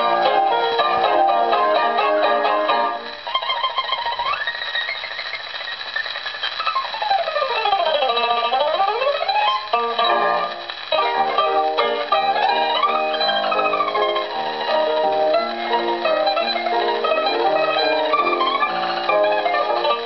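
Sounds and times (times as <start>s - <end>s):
mandolin tremolo melody: 0.0s - 5.7s, 6.5s - 20.0s.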